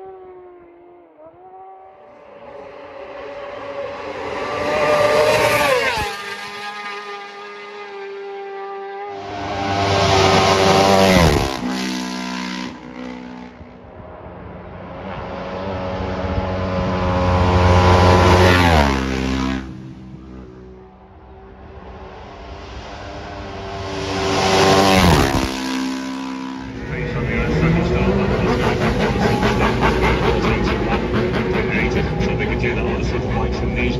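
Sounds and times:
motorcycle engine revving: 0:00.0 - 0:33.9
race motorcycles passing: 0:00.0 - 0:33.9.

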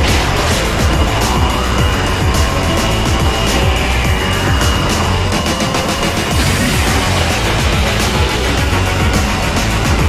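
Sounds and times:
music with heavy bass beat: 0:00.0 - 0:10.0.

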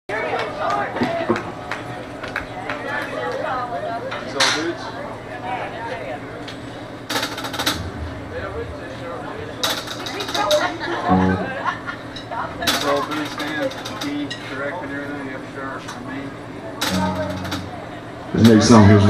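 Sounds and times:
restaurant crowd chatter: 0:00.1 - 0:19.0
low amplifier hum: 0:07.2 - 0:12.7, 0:16.8 - 0:19.0.

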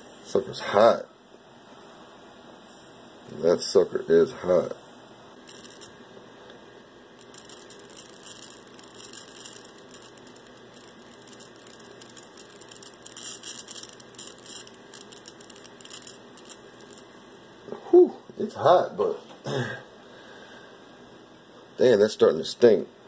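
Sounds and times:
steady low hum: 0:00.0 - 0:23.0
tesla coil plasma crackling: 0:04.6 - 0:06.2, 0:07.0 - 0:17.3.

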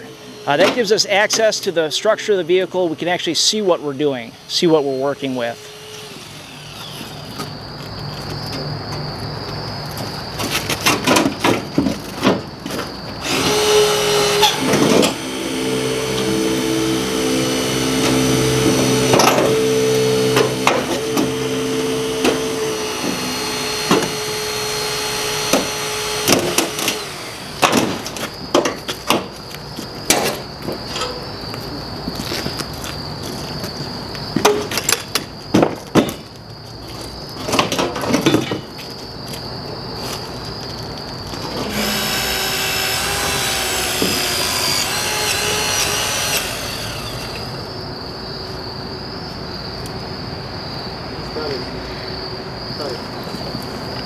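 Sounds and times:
rescue tool motor running: 0:00.0 - 0:03.2, 0:03.9 - 0:07.5, 0:13.2 - 0:28.3, 0:41.5 - 0:47.7.

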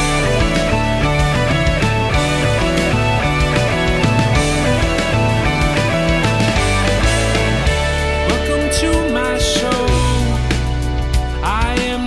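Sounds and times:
drum hits: 0:00.0 - 0:12.0
electric bass notes: 0:00.0 - 0:12.0
rock band playing: 0:00.0 - 0:12.0.

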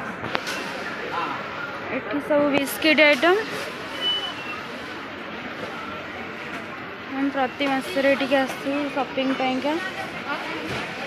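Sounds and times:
shoppers chatter: 0:00.0 - 0:11.0.

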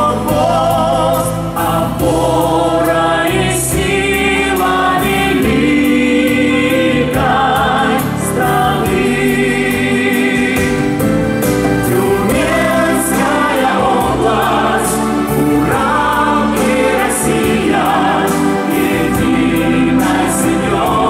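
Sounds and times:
instrumental backing music: 0:00.0 - 0:21.0.

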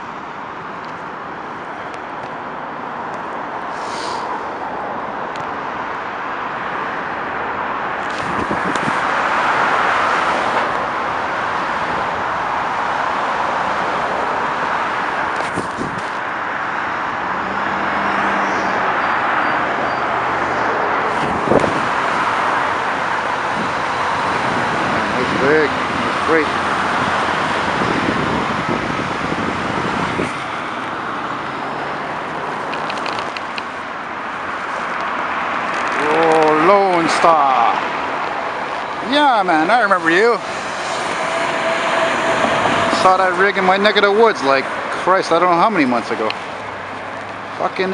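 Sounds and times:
highway traffic: 0:00.0 - 0:47.9.

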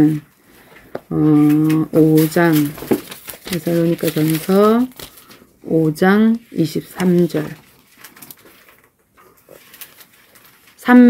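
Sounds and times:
pages rustling: 0:00.5 - 0:05.5, 0:06.3 - 0:11.0.

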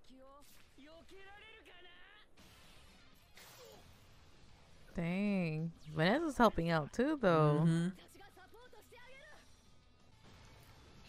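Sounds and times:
faint soundtrack music: 0:00.0 - 0:11.0
high character voice: 0:05.0 - 0:08.0.

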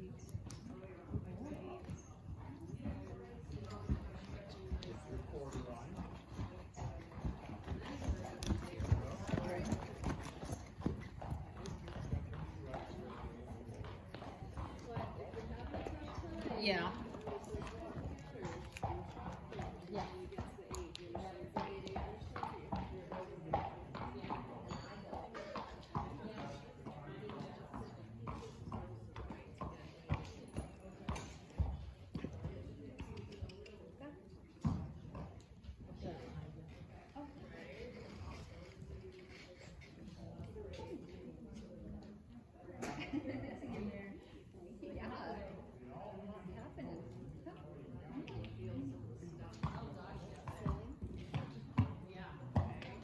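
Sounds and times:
horse hoofbeats on dirt: 0:03.4 - 0:22.9.

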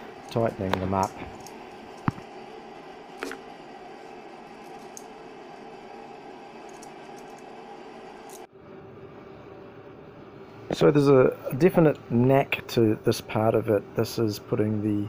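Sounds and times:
workshop background noise: 0:00.0 - 0:08.5.

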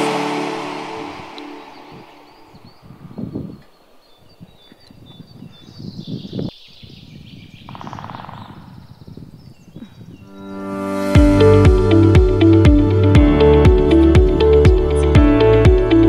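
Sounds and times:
wind and movement on microphone: 0:01.0 - 0:10.5
bird trill: 0:01.4 - 0:10.8
small birds chirping: 0:01.6 - 0:10.8.

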